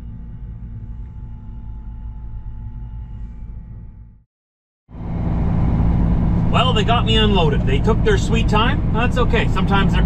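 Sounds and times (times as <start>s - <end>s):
truck diesel engine drone: 4.9s - 10.0s.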